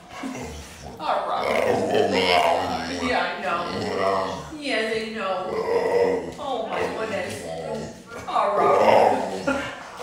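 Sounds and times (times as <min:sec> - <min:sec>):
dog vocalizing: 0:00.0 - 0:04.7.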